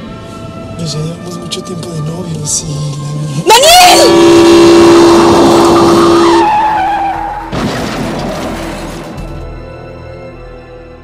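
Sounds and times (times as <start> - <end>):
car tyres screeching: 4.1 - 8.8
car crash impact: 7.2 - 9.5.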